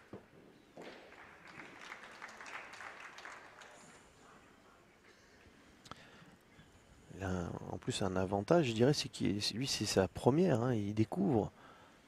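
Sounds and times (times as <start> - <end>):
faint crowd applause: 0.8 - 4.7.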